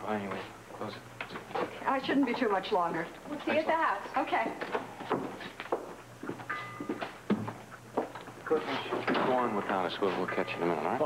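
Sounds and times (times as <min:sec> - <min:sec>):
footsteps on wooden floor: 0:03.2 - 0:09.0.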